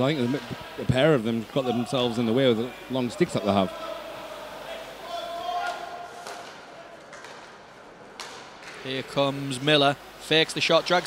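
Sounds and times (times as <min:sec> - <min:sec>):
faint voices: 0:00.0 - 0:07.1
held shout: 0:01.6 - 0:06.2
hockey sticks and puck knocking: 0:05.6 - 0:09.0.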